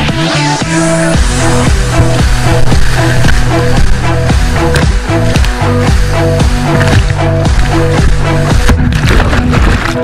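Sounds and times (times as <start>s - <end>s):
fast beat soundtrack music: 0.0s - 10.0s.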